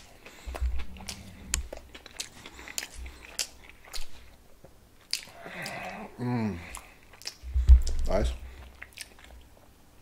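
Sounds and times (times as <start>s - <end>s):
wet mouth clicks: 0.0s - 4.2s, 5.0s - 6.0s, 6.6s - 8.0s, 8.6s - 9.4s
person chewing food: 0.0s - 10.0s.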